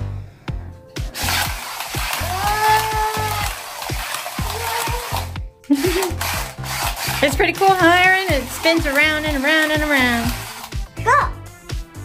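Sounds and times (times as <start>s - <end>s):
music with steady beat: 0.3s - 12.0s
toy car rattling whir: 1.1s - 10.9s.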